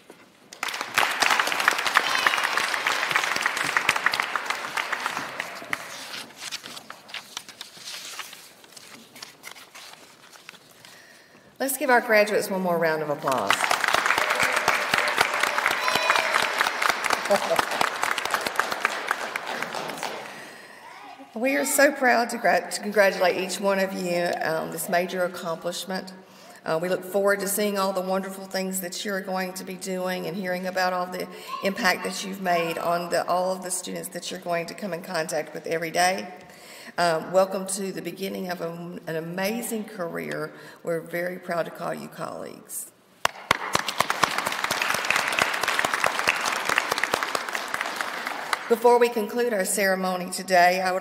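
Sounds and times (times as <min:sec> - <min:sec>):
audience applause: 0:00.6 - 0:06.1, 0:13.5 - 0:20.6, 0:43.2 - 0:48.7.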